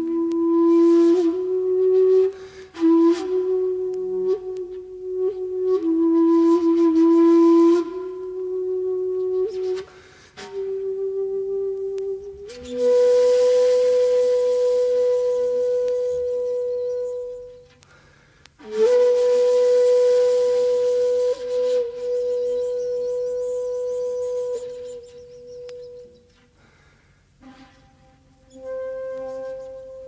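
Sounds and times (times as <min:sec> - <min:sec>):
bamboo flute long notes: 0:00.0 - 0:30.0.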